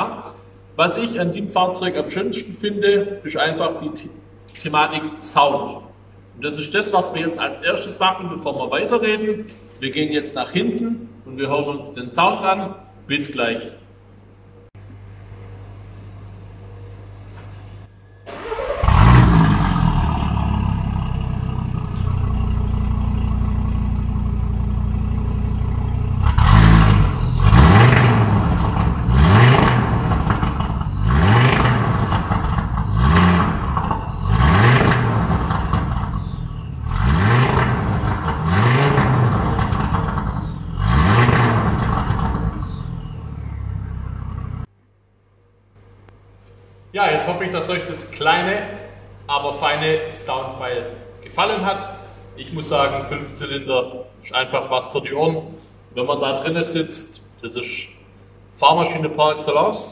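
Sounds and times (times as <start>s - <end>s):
car engine revving: 18.3s - 44.7s.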